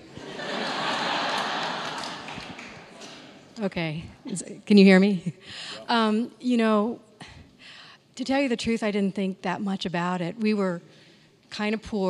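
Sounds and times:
crowd noise in a hall: 0.0s - 3.7s.

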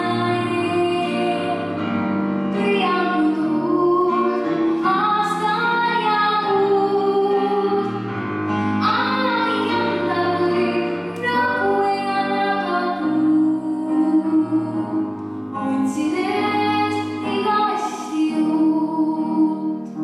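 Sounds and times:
girl singing into microphone: 0.0s - 20.0s
musical accompaniment: 0.0s - 20.0s.

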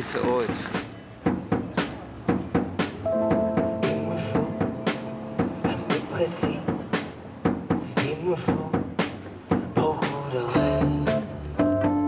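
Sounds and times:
music with drum beat: 0.0s - 12.0s.

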